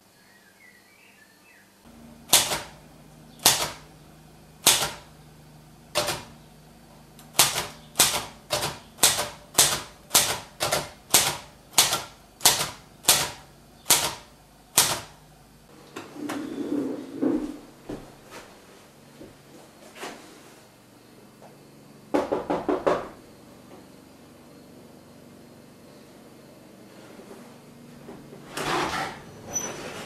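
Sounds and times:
low steady hum: 1.8 - 30.0
typewriter keys striking: 2.3 - 2.8, 3.4 - 3.9, 4.6 - 5.1, 5.9 - 6.3, 7.2 - 15.2.

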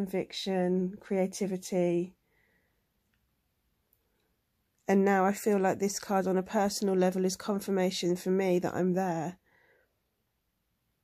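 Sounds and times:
woman's voice: 0.0 - 2.2, 4.8 - 9.4.

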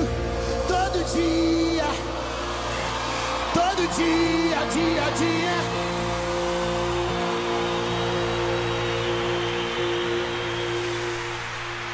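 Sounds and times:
arena crowd noise: 0.0 - 11.9
live band sustained chord: 0.0 - 11.9.

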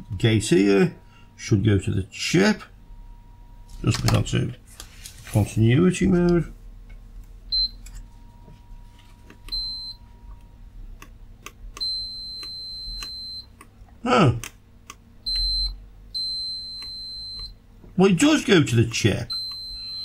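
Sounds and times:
multimeter continuity beeping: 7.5 - 10.6, 11.7 - 13.6, 15.2 - 17.6, 19.1 - 20.0.

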